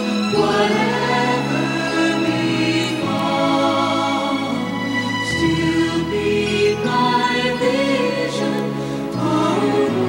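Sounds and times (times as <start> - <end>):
choir singing a hymn: 0.0 - 10.0
musical accompaniment: 0.0 - 10.0.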